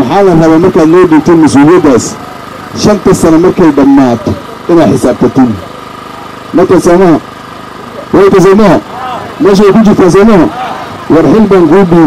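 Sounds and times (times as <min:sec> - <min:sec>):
man speaking into microphone: 0:00.0 - 0:05.6, 0:06.5 - 0:07.3, 0:08.0 - 0:12.0.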